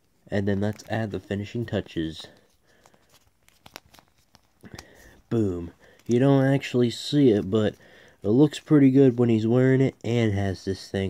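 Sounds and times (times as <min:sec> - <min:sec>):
action figure clicks and rustles: 0:00.4 - 0:05.3.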